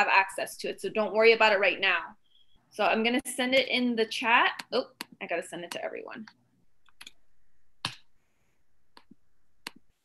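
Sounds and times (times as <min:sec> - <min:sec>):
computer mouse clicks: 0:04.5 - 0:07.2.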